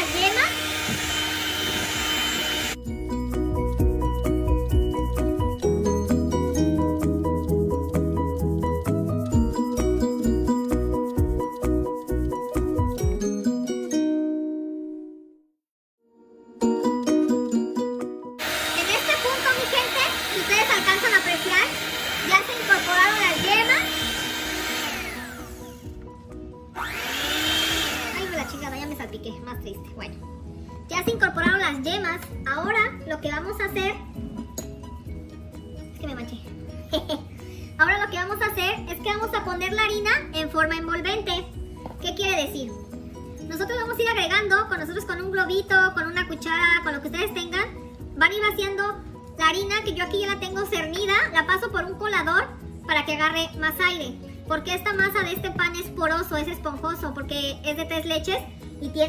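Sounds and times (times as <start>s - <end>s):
electric hand mixer running: 0.0s - 2.8s, 18.4s - 26.0s, 26.7s - 29.0s
background music with struck notes: 2.1s - 15.2s, 21.1s - 37.8s
background music with singing: 2.8s - 13.9s.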